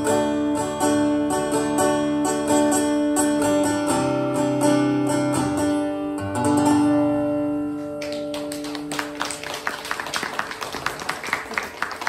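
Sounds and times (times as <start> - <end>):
acoustic guitar chord ringing: 0.0 - 8.3
hand claps: 7.9 - 12.0.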